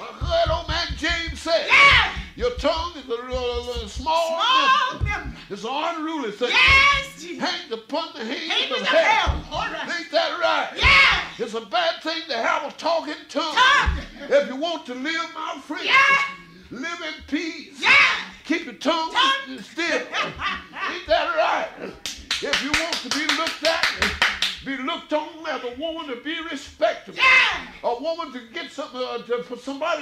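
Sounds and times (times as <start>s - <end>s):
man shouting or chanting: 0.0s - 5.5s, 6.4s - 7.4s, 8.4s - 11.4s, 13.3s - 14.3s, 15.5s - 16.6s, 17.2s - 22.0s, 27.0s - 27.8s
deep thumps: 0.0s - 5.6s, 6.5s - 7.3s, 9.1s - 9.8s, 10.8s - 11.4s, 13.6s - 14.4s
raised voices: 0.0s - 5.7s, 6.4s - 7.4s, 8.3s - 11.4s, 13.4s - 14.4s, 15.4s - 25.0s, 27.0s - 27.9s
fast hand-clapping: 22.0s - 24.7s.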